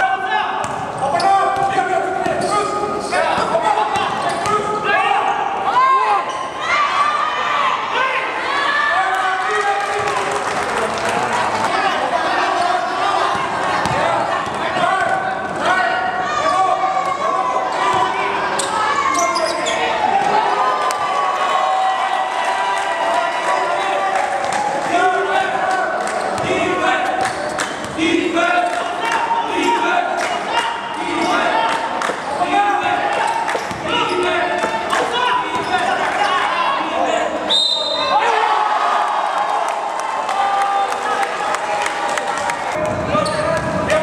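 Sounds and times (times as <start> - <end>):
voices of players and spectators: 0.0 - 44.0
basketball bouncing on court: 0.6 - 2.4, 13.3 - 15.1, 33.5 - 33.9.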